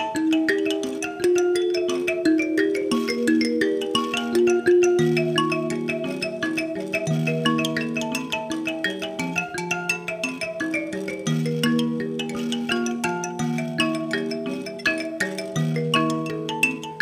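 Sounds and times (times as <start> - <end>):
thumb pianos plucked: 0.0 - 17.0.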